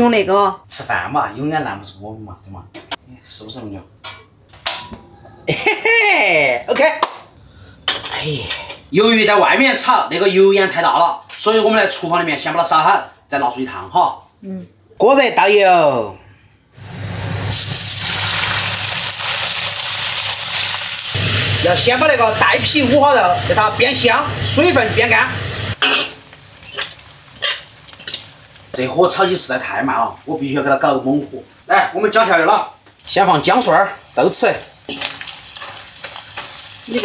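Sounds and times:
pork sizzling in hot oil: 16.8 - 29.8, 33.2 - 37.0.

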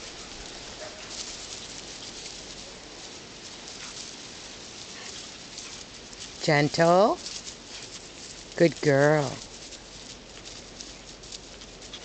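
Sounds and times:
dogs scuffling on grass: 0.0 - 12.0
patter of paws: 0.0 - 12.0.

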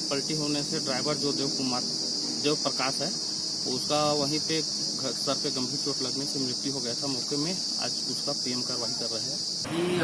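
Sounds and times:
high-pitched insect drone: 0.0 - 10.0
man talking: 0.0 - 10.0.

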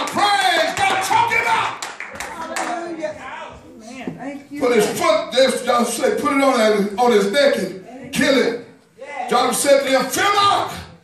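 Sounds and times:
hand-clapping: 0.0 - 2.8.

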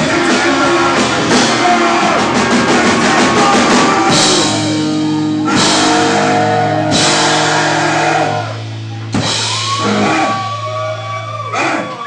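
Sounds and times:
ska-punk band playing live: 0.0 - 12.0.

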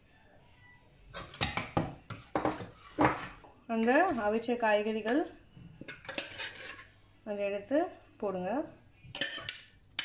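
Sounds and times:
steel ladle scraping a bowl: 5.9 - 7.0.

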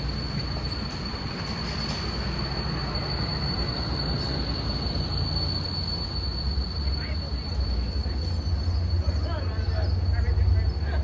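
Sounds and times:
train rumbling past: 0.0 - 11.0.

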